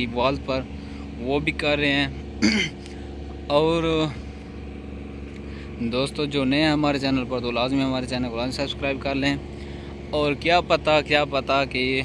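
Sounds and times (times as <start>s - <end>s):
truck engine idling: 0.0s - 12.0s.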